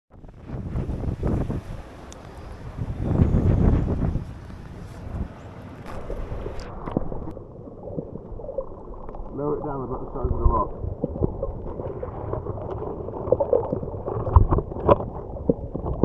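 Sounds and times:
wind buffeting microphone: 0.1s - 8.7s, 9.3s - 16.0s
choppy sea water: 0.1s - 16.0s
muffled underwater sound: 0.1s - 16.0s.

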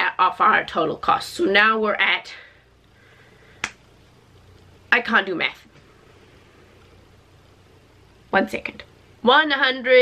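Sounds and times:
woman speaking: 0.0s - 2.5s, 4.9s - 5.7s, 8.3s - 10.0s.

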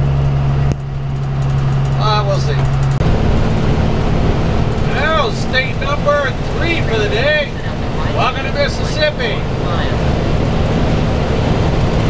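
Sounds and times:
bus engine drone: 0.0s - 12.0s.

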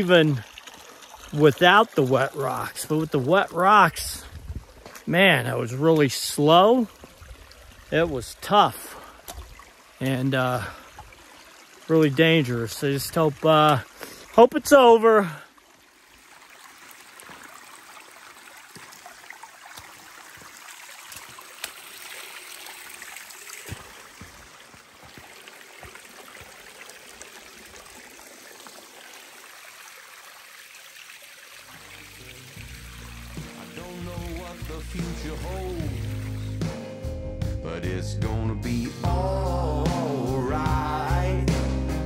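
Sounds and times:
water trickling down rocky trail: 0.0s - 36.6s
music: 31.8s - 42.0s.

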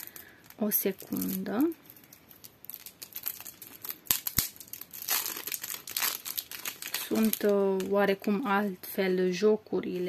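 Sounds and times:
plastic wrap crinkling: 0.0s - 8.6s.

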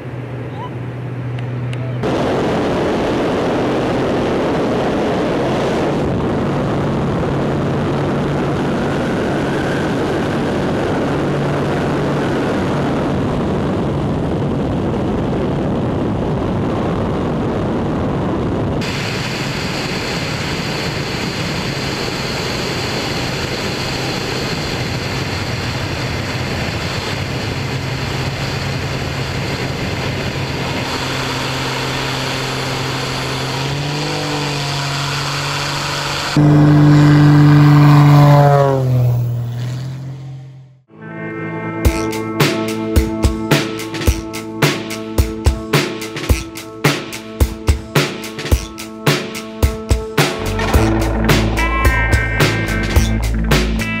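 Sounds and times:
wind rush: 0.0s - 40.4s, 49.5s - 54.0s
propeller plane engine droning: 0.0s - 40.9s, 41.8s - 54.0s.

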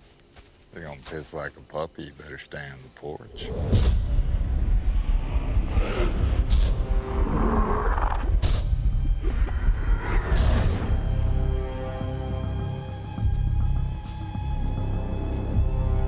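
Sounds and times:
deep rumble: 3.3s - 14.9s
sharp whooshes: 3.4s - 9.0s
tense held chords: 4.0s - 16.0s.

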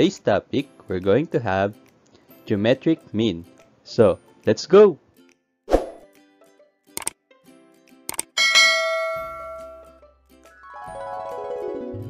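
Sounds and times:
mouse clicks: 7.0s - 7.2s, 8.1s - 8.3s
bell ding: 8.4s - 10.0s.

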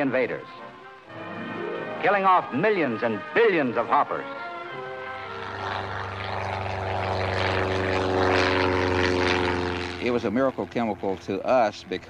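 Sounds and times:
propeller aircraft engine running: 0.0s - 12.0s.

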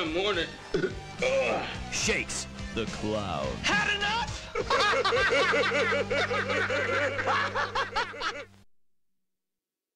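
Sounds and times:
person giggling: 4.6s - 8.5s.

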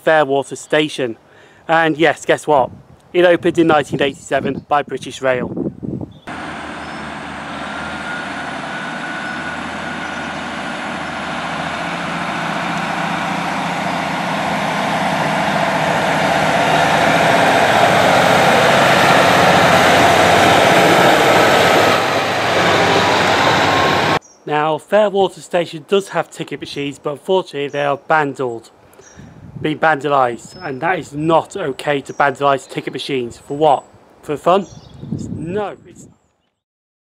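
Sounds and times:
diesel train engines: 6.3s - 24.2s
train wheels on rails: 6.3s - 24.2s.

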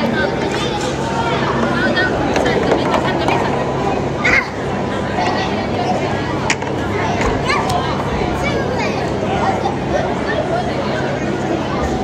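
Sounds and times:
children's voices chattering: 0.0s - 12.0s.

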